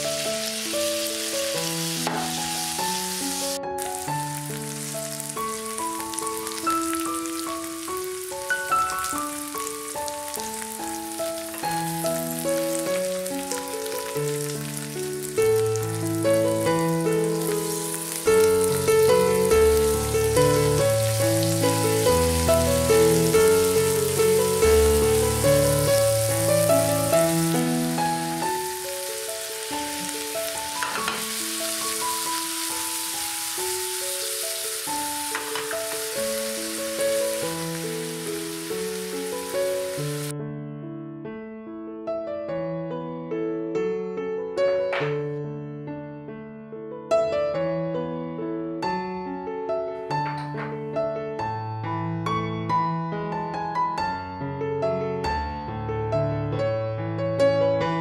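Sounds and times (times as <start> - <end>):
okra sizzling in oil: 0.0 - 40.3
keyboard music with held notes: 0.0 - 40.4.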